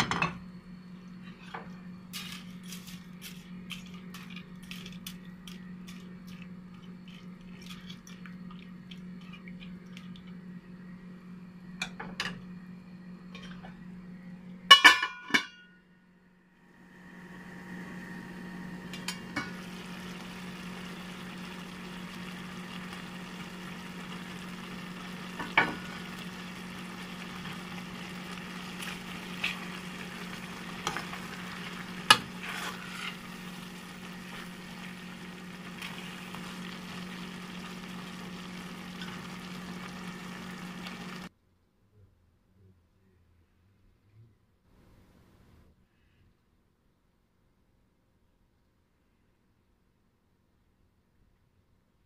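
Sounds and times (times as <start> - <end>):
food sizzling in a pot: 0.0 - 7.4, 16.7 - 41.3
low hum: 0.0 - 41.3.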